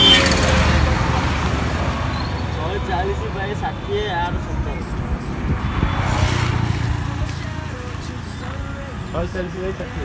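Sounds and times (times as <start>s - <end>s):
vehicle passing: 0.0s - 10.0s.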